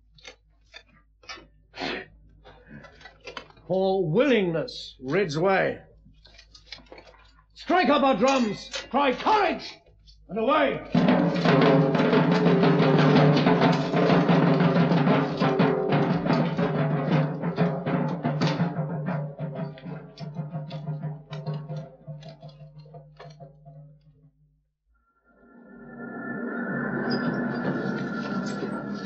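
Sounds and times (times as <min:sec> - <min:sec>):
field drums beating fast: 0:10.7 - 0:23.3.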